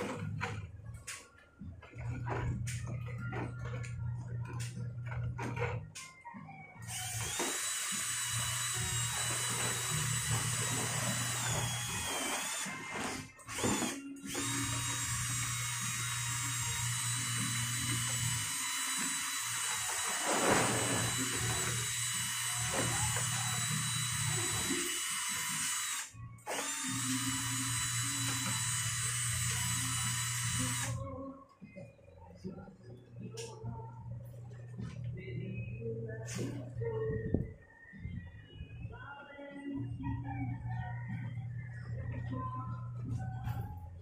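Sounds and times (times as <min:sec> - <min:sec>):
drill with mixing paddle whining: 0:06.8 - 0:31.0.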